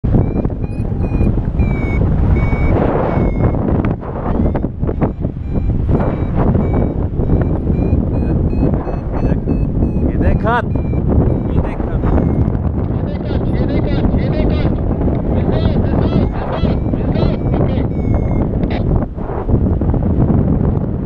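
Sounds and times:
variometer beeping high tones: 0.0s - 19.0s
wind rush on microphone: 0.0s - 21.0s.

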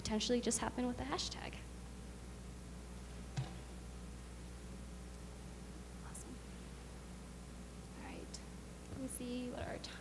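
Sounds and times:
woman speaking: 0.0s - 1.7s, 8.0s - 10.0s
low electrical hum: 0.0s - 10.0s.

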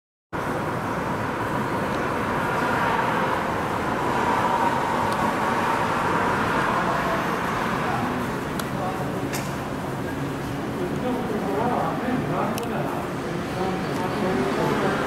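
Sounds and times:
steady outdoor rushing: 0.4s - 11.7s
faint constant hum: 0.4s - 15.0s.

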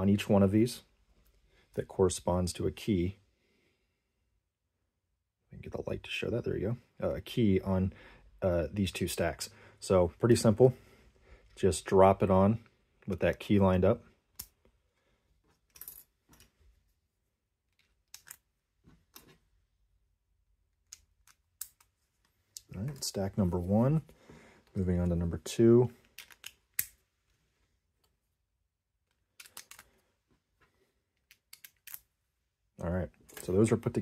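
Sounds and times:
plastic pieces clicking: 17.7s - 18.4s, 26.0s - 27.0s, 29.1s - 30.0s, 31.2s - 32.1s.

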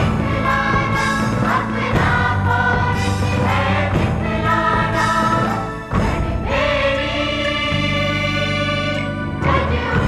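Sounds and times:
choir singing held note: 0.1s - 10.0s.

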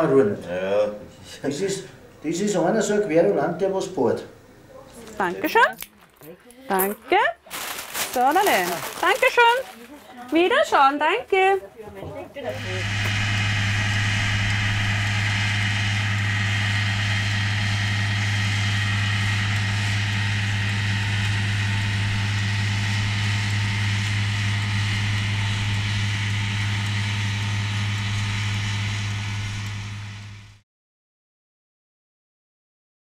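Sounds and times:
tractor engine running: 12.5s - 30.6s.

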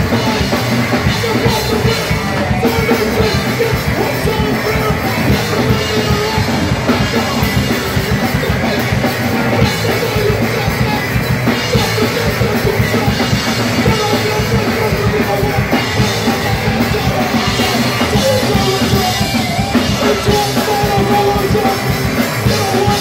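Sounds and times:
drum kit: 0.0s - 23.0s
electric bass: 0.0s - 23.0s
live rock band playing: 0.0s - 23.0s.

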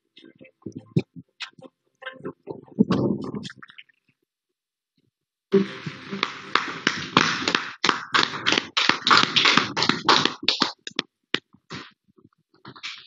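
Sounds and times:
group clapping: 5.6s - 11.0s.

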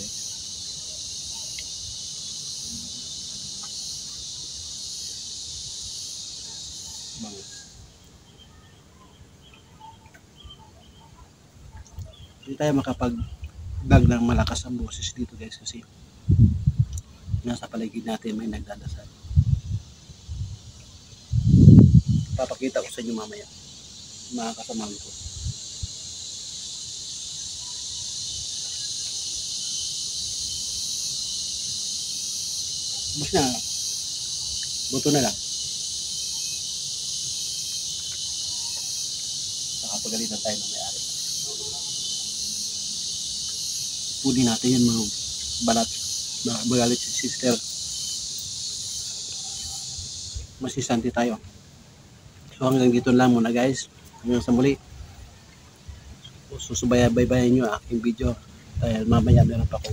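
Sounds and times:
faint chirps and ticks: 0.0s - 21.4s, 22.0s - 59.0s
high-pitched insect buzz: 0.0s - 51.7s.

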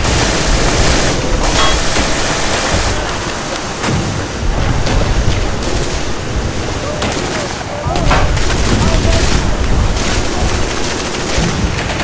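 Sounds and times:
heavy surf: 0.0s - 12.0s
wind: 0.0s - 12.0s.

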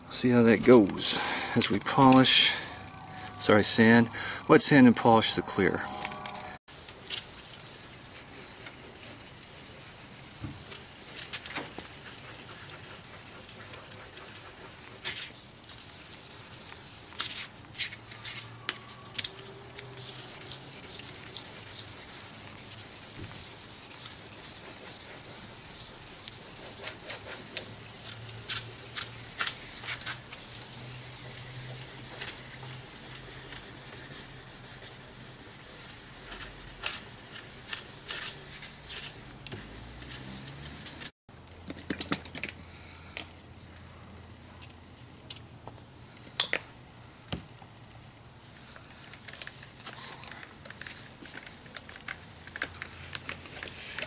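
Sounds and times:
wet sanding hiss: 6.7s - 17.9s, 19.4s - 41.1s.

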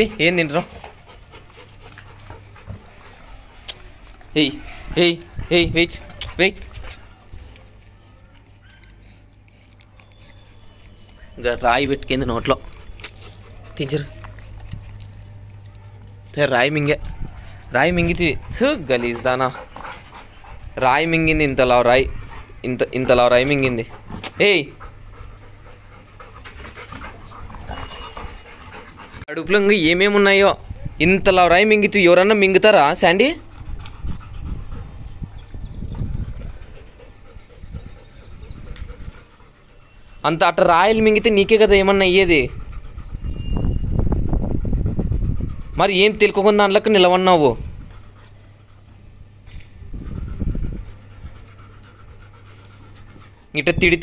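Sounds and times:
dog panting: 0.0s - 30.4s, 32.0s - 54.0s.

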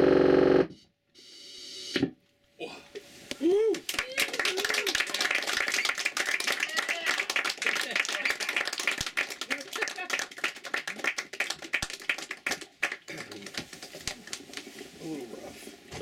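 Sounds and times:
voices and cheers: 3.6s - 8.3s
small crowd clapping: 3.7s - 15.0s.

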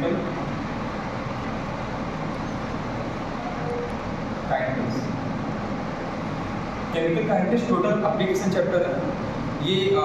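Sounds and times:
low rumble and hiss: 0.0s - 10.0s.

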